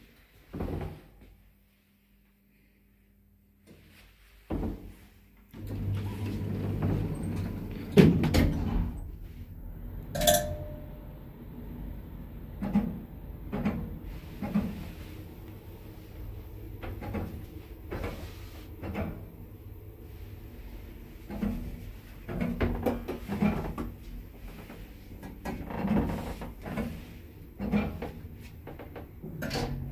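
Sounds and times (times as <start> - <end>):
lift running with low hum: 5.5 - 29.9
lift doors rumbling shut: 5.6 - 10.2.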